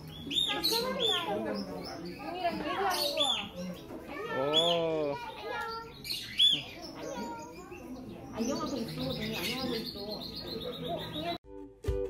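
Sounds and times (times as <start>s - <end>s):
small birds chirping: 0.0s - 11.4s.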